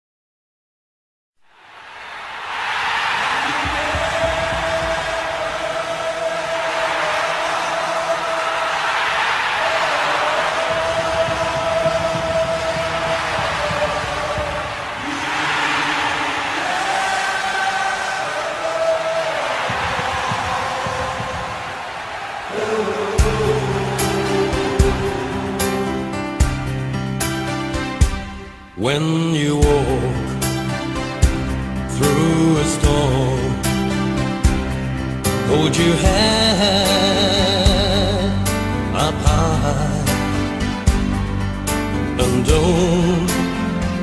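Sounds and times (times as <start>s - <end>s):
stadium crowd singing: 1.9s - 26.8s.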